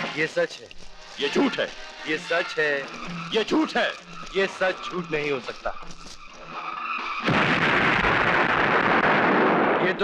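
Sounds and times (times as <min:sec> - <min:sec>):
dynamite explosion blast: 0:07.1 - 0:10.0
steady explosion roar: 0:07.2 - 0:10.0.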